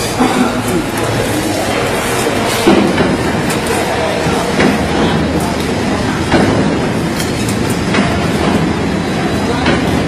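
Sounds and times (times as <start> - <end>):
machinery clatter and rumble: 0.0 - 10.0.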